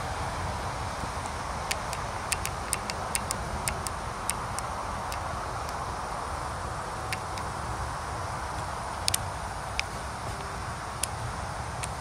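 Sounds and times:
steady background hiss: 0:00.0 - 0:12.0
sharp high ticks: 0:01.2 - 0:05.8, 0:07.1 - 0:07.6, 0:08.6 - 0:11.2, 0:11.8 - 0:12.0.

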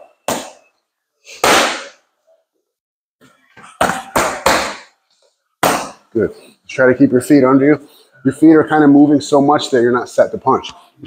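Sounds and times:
boxing gloves striking mitts: 0:00.2 - 0:00.7, 0:01.4 - 0:02.0, 0:03.6 - 0:05.0, 0:05.6 - 0:06.0.

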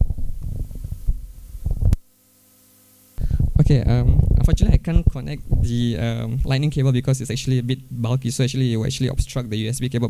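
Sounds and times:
microphone handling thuds: 0:00.0 - 0:02.0, 0:03.2 - 0:05.8.

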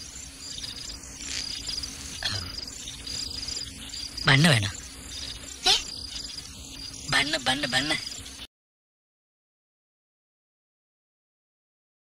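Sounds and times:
insects chirping: 0:00.0 - 0:08.5.

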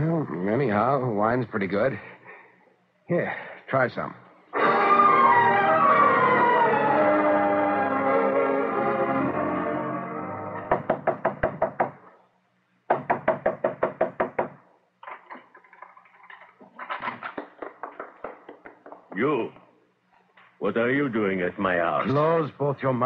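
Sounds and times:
music bridge: 0:04.6 - 0:10.7
fist knocking on wooden door: 0:10.7 - 0:12.0, 0:12.9 - 0:14.6.

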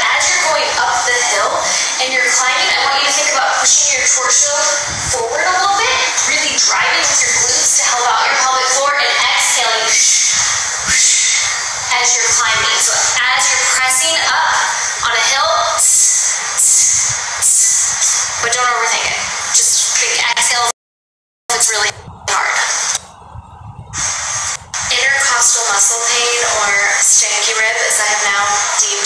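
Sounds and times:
woman talking: 0:00.0 - 0:17.8, 0:18.4 - 0:20.7, 0:21.5 - 0:23.0, 0:24.8 - 0:29.0.

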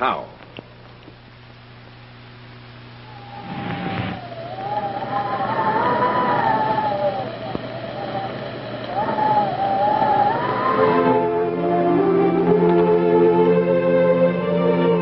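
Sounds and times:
wavering electronic tone: 0:02.9 - 0:15.0
whoosh of noise: 0:03.1 - 0:11.7.

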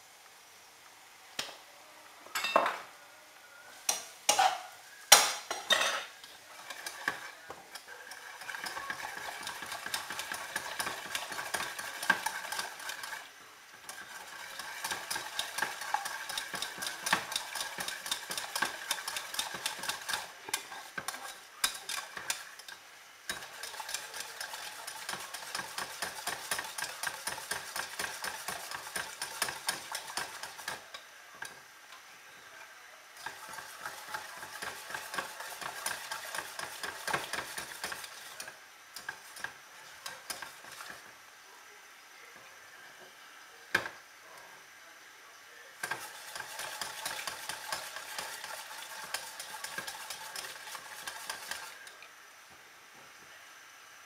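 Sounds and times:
utensil scraping a pan: 0:33.2 - 0:41.0, 0:45.8 - 0:51.8.

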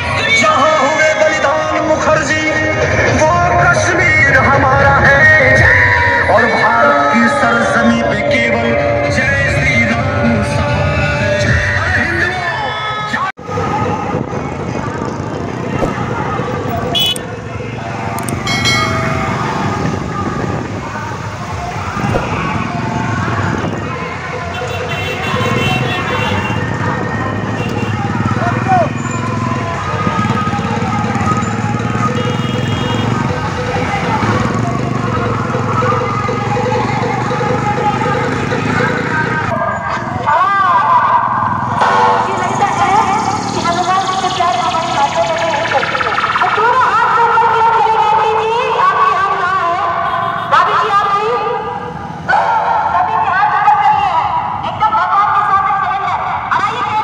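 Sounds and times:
motorcycle engines rumbling: 0:00.0 - 0:57.0
voices: 0:00.0 - 0:57.0.

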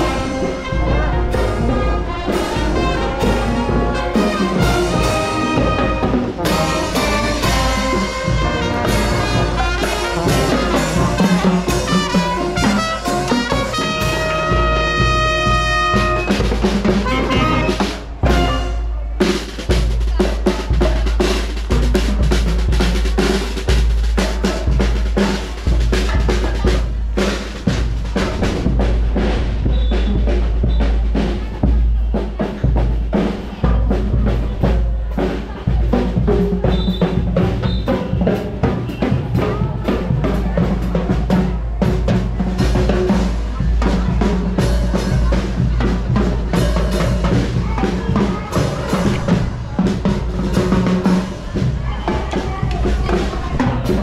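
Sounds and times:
bass drum: 0:00.0 - 0:54.0
snare drums with rolls: 0:00.0 - 0:54.0.

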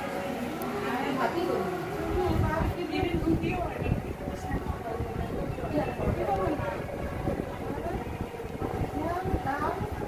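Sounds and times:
women talking: 0:00.8 - 0:10.0.

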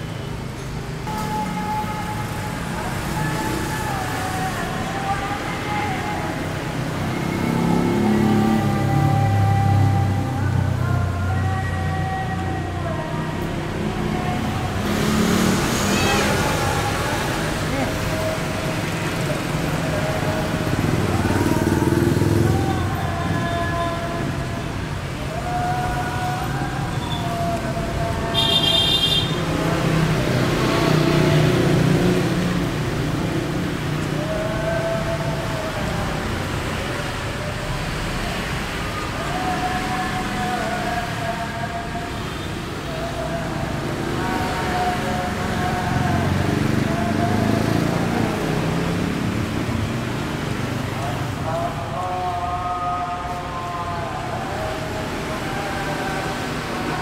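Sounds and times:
traffic rumble: 0:00.0 - 0:57.0.

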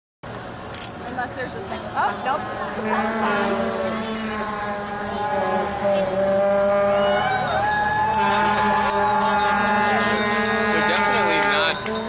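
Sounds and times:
motorcycle engines running: 0:01.0 - 0:12.0.

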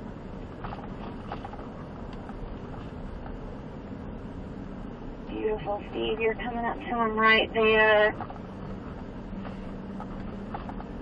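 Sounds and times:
low rumble of engine and tyres: 0:00.0 - 0:11.0
faint clicks and knocks: 0:08.1 - 0:11.0.

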